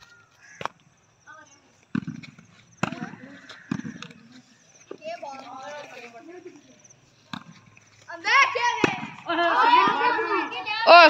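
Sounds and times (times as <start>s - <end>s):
volleyball hit by hand: 1.9s - 4.2s
boys calling out: 8.0s - 11.0s.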